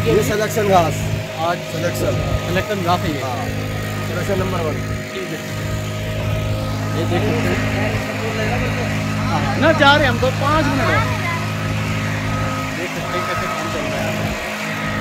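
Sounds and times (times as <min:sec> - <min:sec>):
faint voices: 0:00.0 - 0:15.0
machinery engine droning: 0:00.0 - 0:15.0.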